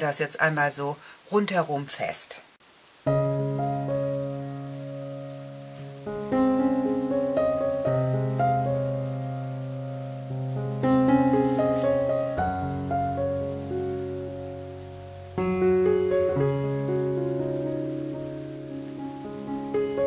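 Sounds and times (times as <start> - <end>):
calm piano music: 3.0 - 20.0.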